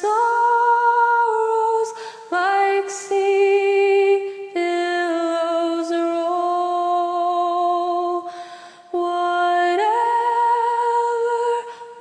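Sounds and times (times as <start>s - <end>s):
woman singing a hymn: 0.0s - 12.0s
singer breathing in: 1.9s - 2.3s, 8.2s - 8.9s.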